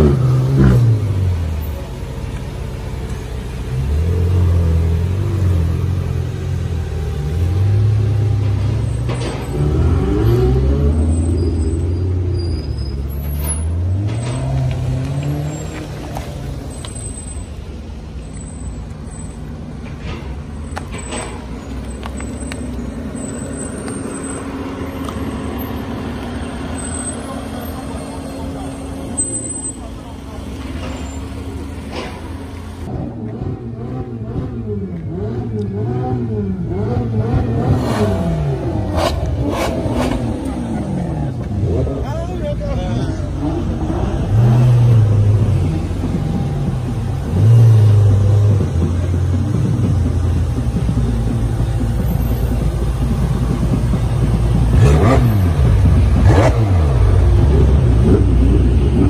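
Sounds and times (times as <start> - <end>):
car engines driving past: 0.0 - 59.0.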